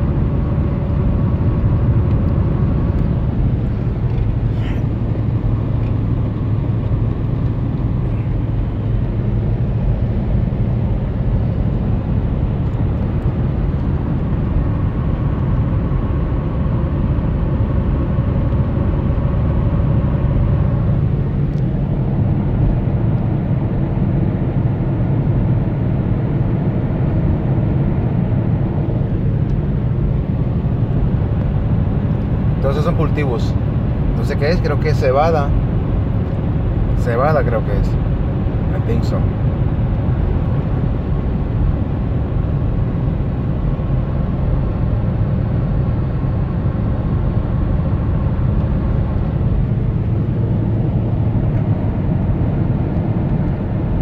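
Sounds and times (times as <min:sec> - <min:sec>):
engine and tyre rumble: 0:00.0 - 0:54.0.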